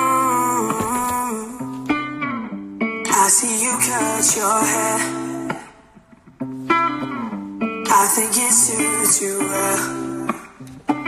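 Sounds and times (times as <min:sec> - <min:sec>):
acoustic guitar ballad on speakers: 0:00.0 - 0:11.0.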